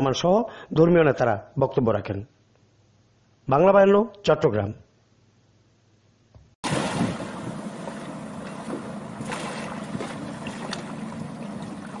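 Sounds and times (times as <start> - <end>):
sea water washing: 6.6 - 12.0
wind on microphone: 6.7 - 12.0.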